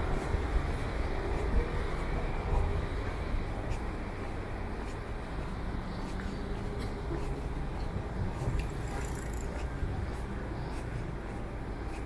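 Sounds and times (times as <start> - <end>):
low rumble of street noise: 0.0 - 12.0.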